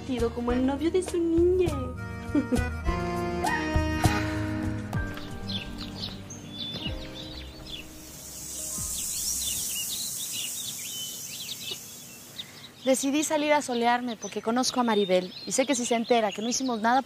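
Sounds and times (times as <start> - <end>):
background music: 0.0 - 10.0
small birds chirping: 5.0 - 17.0
high hiss: 7.1 - 12.7.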